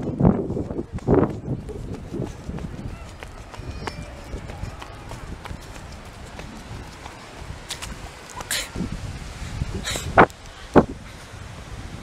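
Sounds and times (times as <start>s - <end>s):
footsteps on sand: 0.0s - 10.6s.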